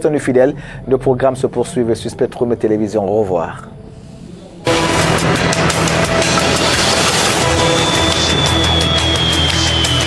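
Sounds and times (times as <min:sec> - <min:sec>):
tv news theme music: 0:04.6 - 0:10.0.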